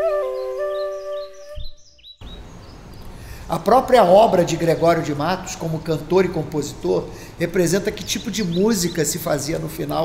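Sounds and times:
bamboo flute melody: 0:00.0 - 0:01.8
birds chirping: 0:00.0 - 0:10.0.

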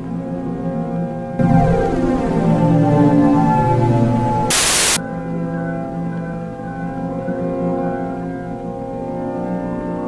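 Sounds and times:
droning music of held tones: 0:00.0 - 0:10.0
burst of loud static: 0:04.5 - 0:05.0.

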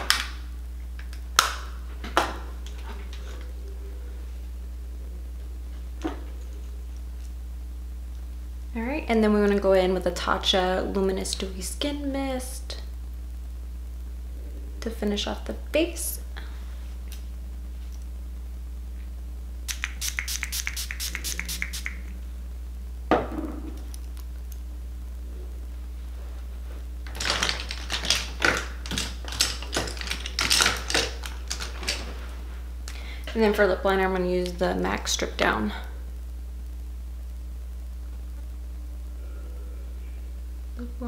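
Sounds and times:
sharp clicks of makeup products: 0:19.7 - 0:22.0
spray bottle spritzes: 0:19.7 - 0:22.1.

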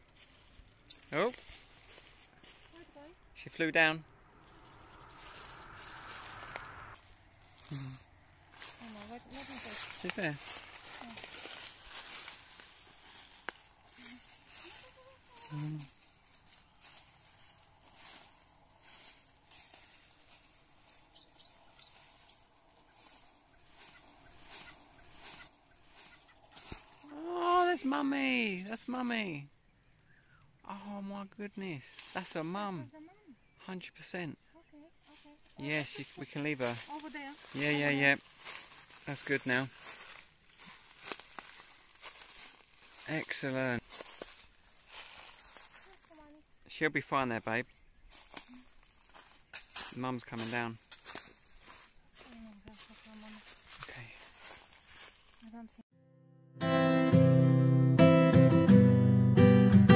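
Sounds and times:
dry leaves rustling and crunching: 0:00.0 - 0:03.2, 0:04.2 - 0:28.6, 0:31.8 - 0:32.9, 0:35.0 - 0:46.6, 0:47.7 - 0:55.8
excited voice: 0:27.0 - 0:28.6.

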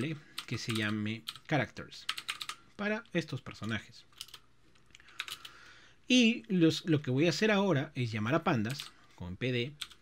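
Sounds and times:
faint keyboard typing: 0:00.0 - 0:05.7, 0:08.6 - 0:10.0.

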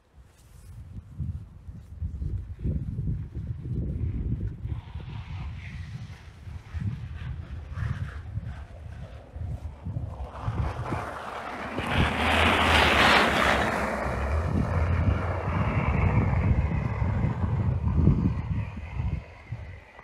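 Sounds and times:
truck driving past on snow: 0:04.7 - 0:20.0.

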